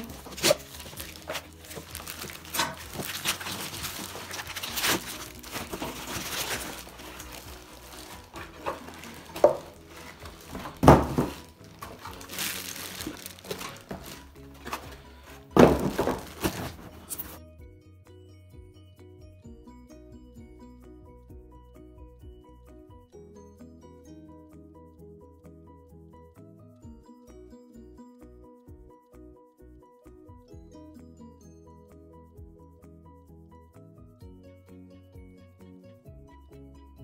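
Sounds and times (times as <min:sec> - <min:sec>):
cardboard box knocks and thumps: 0:00.0 - 0:17.4
plastic film rustling and crinkling: 0:00.0 - 0:17.4
soft background music: 0:00.0 - 0:37.0.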